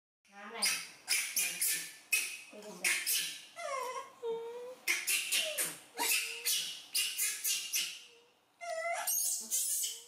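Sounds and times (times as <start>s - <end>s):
monkey screeching squeals: 0.6s - 3.9s, 4.9s - 8.0s, 8.6s - 10.0s
monkey whimpering call: 0.6s - 10.0s.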